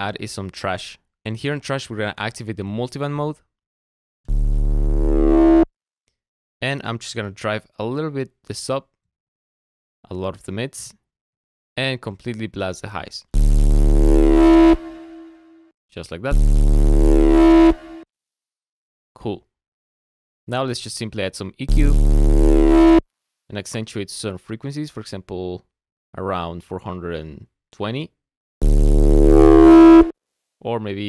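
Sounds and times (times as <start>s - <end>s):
distorted synth bass note: 4.3s - 5.7s, 13.4s - 15.5s, 16.3s - 18.0s, 21.7s - 23.0s, 28.6s - 30.1s.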